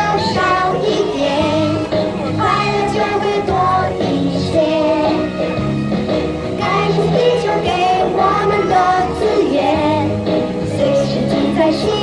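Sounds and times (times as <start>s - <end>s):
young children singing: 0.0s - 1.8s, 2.4s - 5.2s, 6.6s - 12.0s
musical accompaniment: 0.0s - 12.0s.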